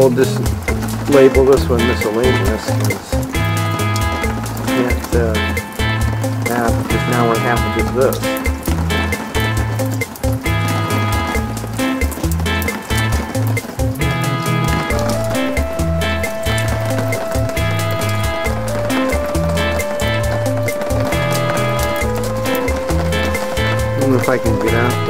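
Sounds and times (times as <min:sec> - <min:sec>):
background music with beat and bass: 0:00.0 - 0:25.0
held melody note: 0:01.2 - 0:13.4, 0:14.0 - 0:25.0.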